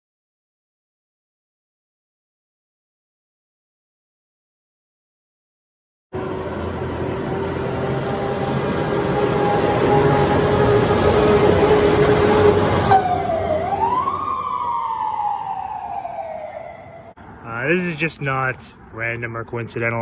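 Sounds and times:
fire truck siren: 0:06.2 - 0:18.0.

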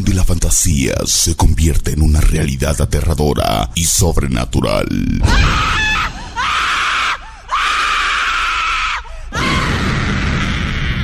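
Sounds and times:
girl screaming: 0:05.3 - 0:11.0.

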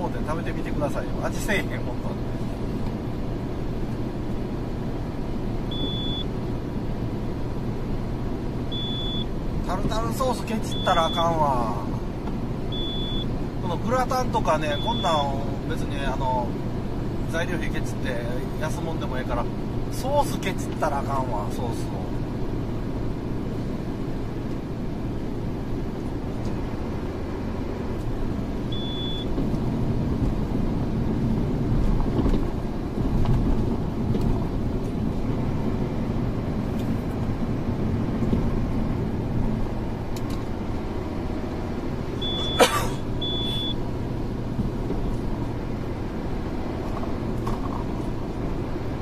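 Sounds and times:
car road and engine noise: 0:00.0 - 0:49.0
short high beeps: 0:05.7 - 0:06.3, 0:28.8 - 0:29.3, 0:42.2 - 0:42.6, 0:43.2 - 0:43.8.

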